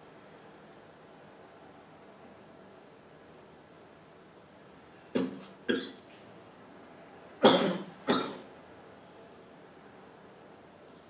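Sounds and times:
person coughing: 5.2s - 6.0s, 7.4s - 8.4s.

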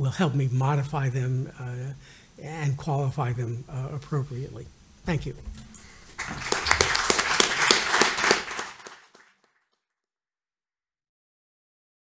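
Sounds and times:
audience applauding: 5.7s - 9.5s.

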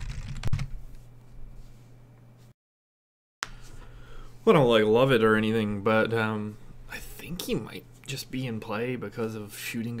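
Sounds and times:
typing on computer keyboard: 0.0s - 0.7s.

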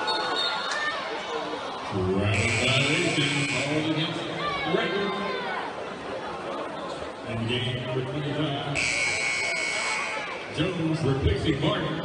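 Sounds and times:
crowd chatter: 0.0s - 12.0s
arena buzzer blaring: 2.3s - 4.0s, 8.8s - 10.4s.

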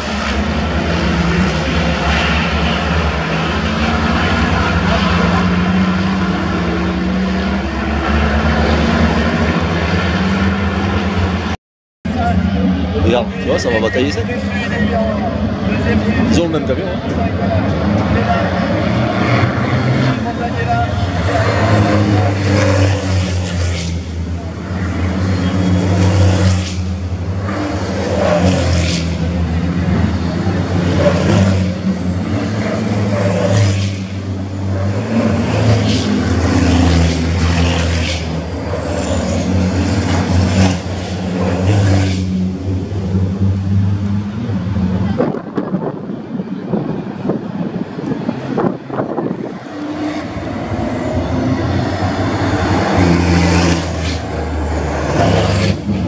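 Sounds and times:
diesel truck engines passing: 0.0s - 56.0s.

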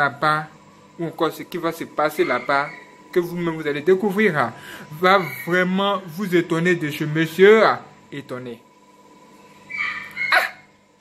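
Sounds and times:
short animal calls: 9.7s - 10.6s.

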